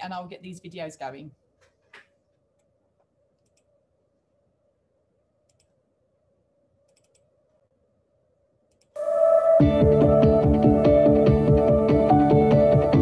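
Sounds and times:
low steady room hum: 0.0 - 9.0
faint computer mouse clicks: 3.4 - 3.7, 5.5 - 5.8, 6.9 - 7.3, 8.7 - 9.0.

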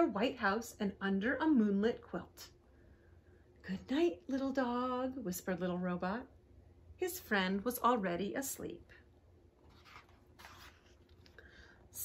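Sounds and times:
paper page turning: 9.6 - 11.4.

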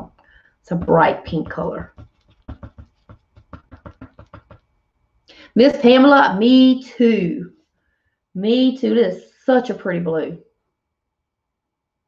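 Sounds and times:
soft taps and clicks: 0.8 - 4.7.

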